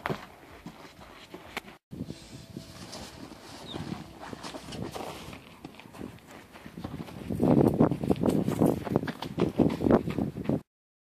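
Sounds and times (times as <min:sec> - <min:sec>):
running footsteps in snow: 0:00.0 - 0:10.6.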